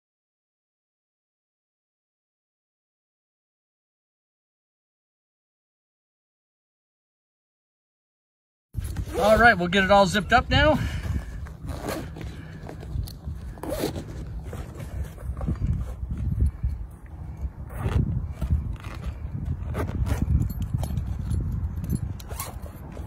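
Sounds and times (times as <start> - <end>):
zipper being pulled closed: 8.8 - 9.5, 11.0 - 16.6, 17.3 - 21.3, 21.9 - 23.0
bag rustling: 8.8 - 9.9, 10.8 - 16.6.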